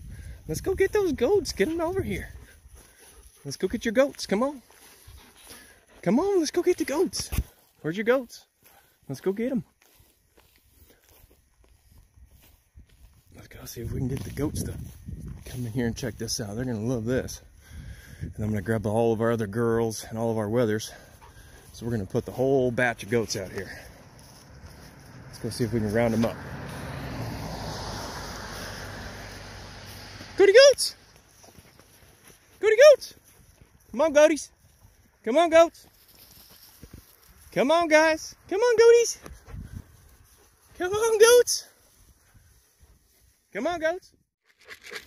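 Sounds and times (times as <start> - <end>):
man calling goats: 0.0 - 9.8, 13.0 - 26.8, 28.3 - 44.2
faint footsteps in grass: 0.0 - 43.9.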